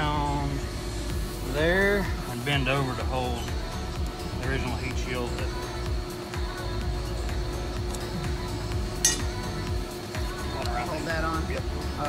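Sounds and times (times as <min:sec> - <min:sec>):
background music: 0:00.0 - 0:12.0
sharp metallic clink: 0:09.0 - 0:09.4.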